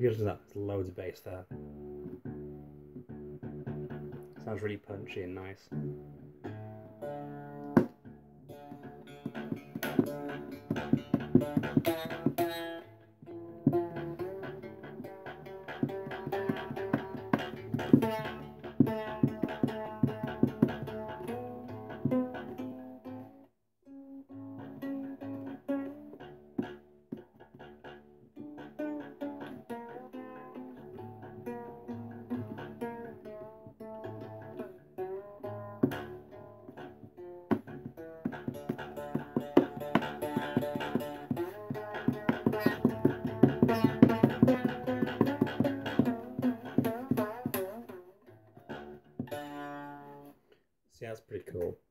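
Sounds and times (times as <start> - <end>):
plucked string instrument: 0.0 - 50.6.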